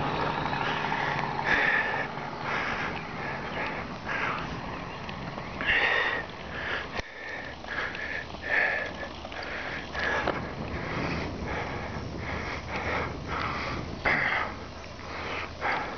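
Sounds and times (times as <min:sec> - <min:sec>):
tyres rumbling: 0:00.0 - 0:15.9
wind: 0:00.0 - 0:15.9
person breathing hard: 0:00.6 - 0:04.7, 0:05.6 - 0:15.9.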